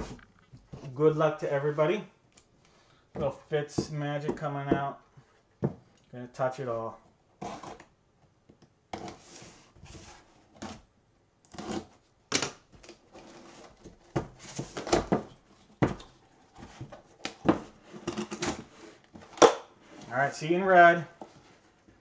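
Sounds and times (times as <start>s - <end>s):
cardboard rustling and scraping: 7.4s - 7.9s, 9.0s - 10.9s, 12.8s - 22.0s.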